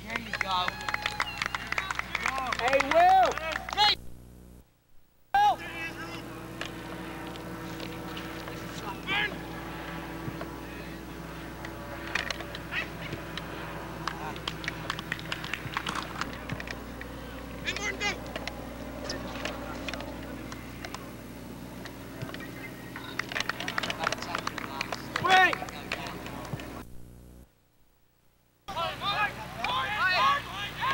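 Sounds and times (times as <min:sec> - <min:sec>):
steady low hum: 0:00.0 - 0:30.9
distant shouts of players: 0:00.2 - 0:04.0, 0:05.3 - 0:18.3, 0:22.0 - 0:26.8, 0:28.7 - 0:30.9.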